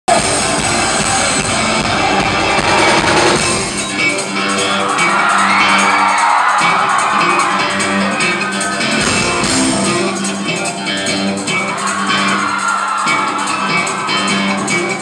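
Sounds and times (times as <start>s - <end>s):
loud rock band playing: 0.1s - 15.0s.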